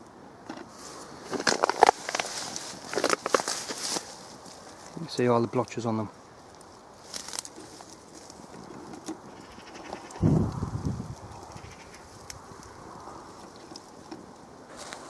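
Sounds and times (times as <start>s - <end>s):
rustling plant stems: 0.5s - 15.0s.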